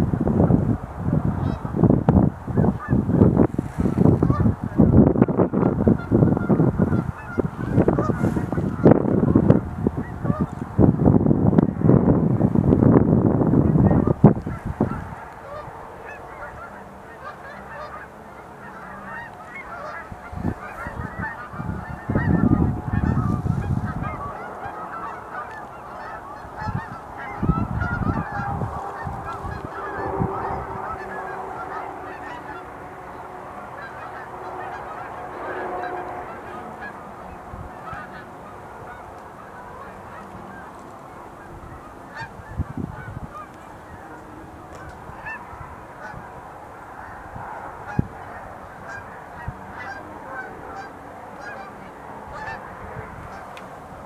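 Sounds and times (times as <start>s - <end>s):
geese honking: 1.3s - 54.0s.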